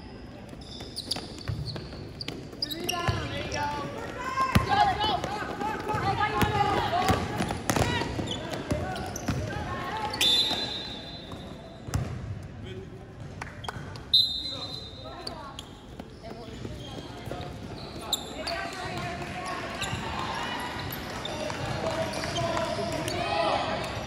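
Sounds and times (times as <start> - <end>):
basketball bouncing on wood court: 1.1 - 10.1, 11.3 - 12.3
referee's whistle blasts: 10.1 - 11.6, 14.1 - 15.0.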